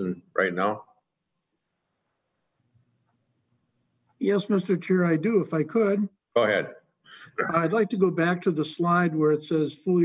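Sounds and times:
faint low hum: 0:00.0 - 0:00.8, 0:04.2 - 0:10.0.

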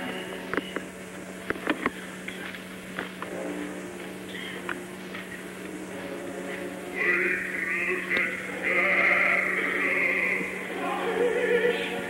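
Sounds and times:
low hum: 0:00.0 - 0:12.0
operatic singing with orchestra: 0:06.5 - 0:12.0.

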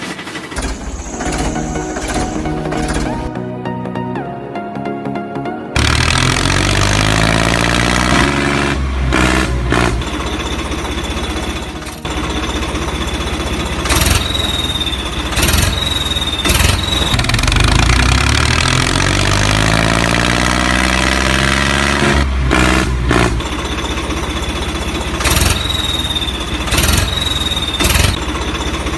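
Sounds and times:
tractor engine revving: 0:00.0 - 0:03.4, 0:05.8 - 0:28.9.

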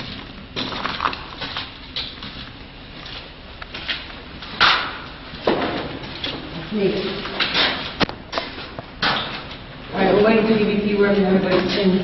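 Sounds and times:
footsteps on tunnel floor: 0:00.0 - 0:12.0.

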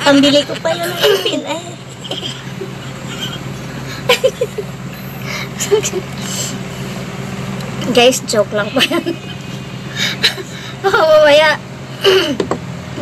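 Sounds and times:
steady low hum: 0:00.0 - 0:13.0
woman's laugh-like voice: 0:00.1 - 0:06.2, 0:08.7 - 0:11.2.

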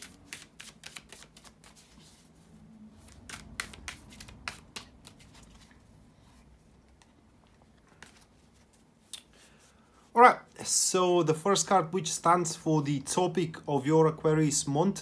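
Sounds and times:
cards being shuffled: 0:00.0 - 0:02.3, 0:03.0 - 0:05.8, 0:06.8 - 0:09.5.

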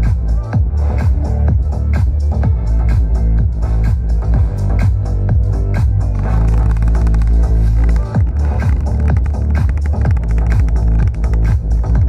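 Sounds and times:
bass-heavy electronic music: 0:00.0 - 0:12.0.

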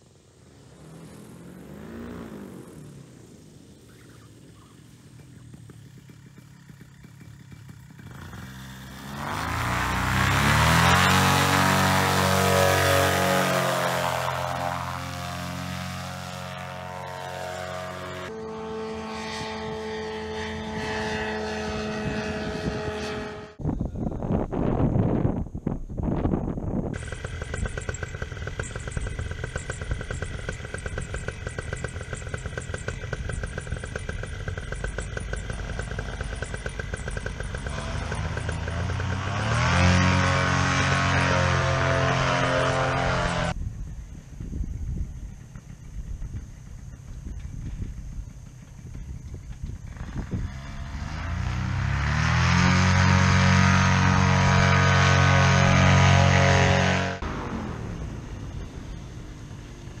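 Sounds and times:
paramotor engine running: 0:00.0 - 0:23.6, 0:26.3 - 0:43.6, 0:45.1 - 1:00.0.

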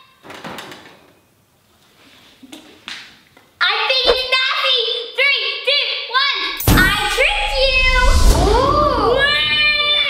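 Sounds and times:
rustling swish: 0:04.1 - 0:04.3.

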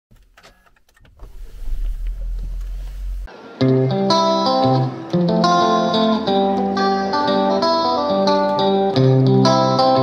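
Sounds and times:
car engine starting and idling: 0:00.2 - 0:03.3.

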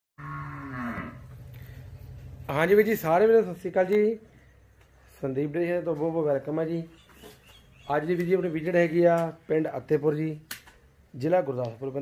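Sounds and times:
cow mooing: 0:00.2 - 0:01.4.

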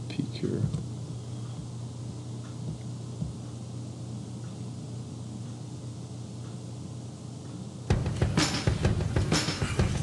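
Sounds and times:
electrical hum with hiss: 0:00.0 - 0:10.0
drum-backed advert music: 0:07.9 - 0:10.0.

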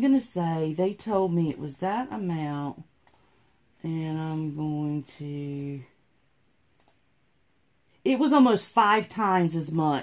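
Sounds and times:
faint computer clicks: 0:03.0 - 0:03.3, 0:06.4 - 0:07.0.

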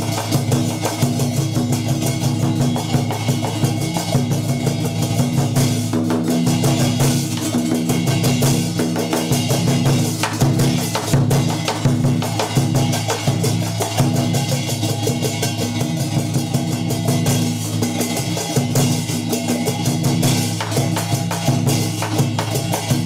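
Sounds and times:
fast drum and percussion beats: 0:00.0 - 0:23.0.

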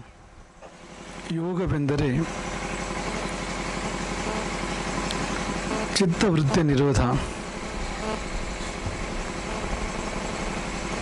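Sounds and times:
background drone and hiss: 0:00.0 - 0:11.0
faint low hum: 0:04.2 - 0:11.0.

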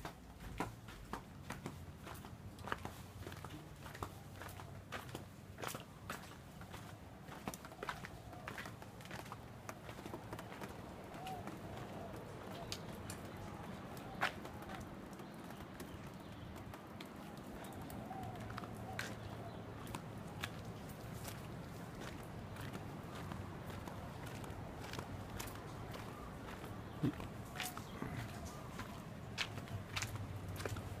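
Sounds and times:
footsteps on concrete: 0:19.0 - 0:30.9.

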